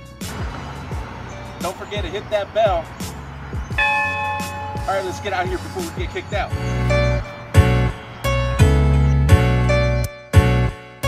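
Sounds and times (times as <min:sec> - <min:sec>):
music with steady beat: 0:00.0 - 0:11.0
large bell ringing: 0:03.7 - 0:09.1.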